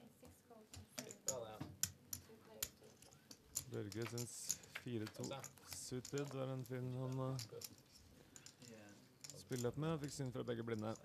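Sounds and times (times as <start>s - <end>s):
poker chips clicking: 1.0s - 11.0s.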